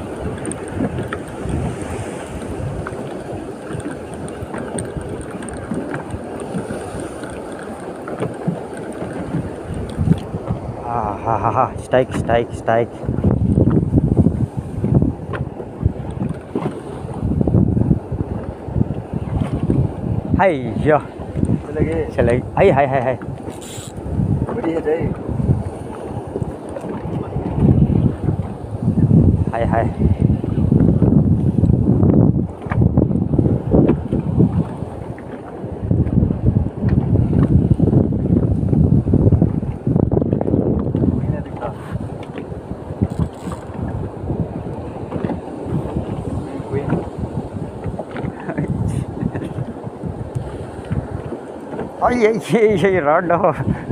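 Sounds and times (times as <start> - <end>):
choppy sea water: 0.0 - 53.9
wind buffeting microphone: 0.0 - 53.9.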